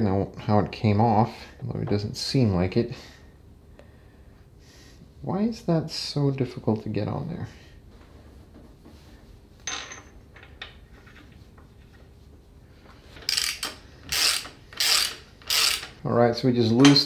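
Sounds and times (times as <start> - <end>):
metal parts scraping and clicking: 13.1 - 16.0.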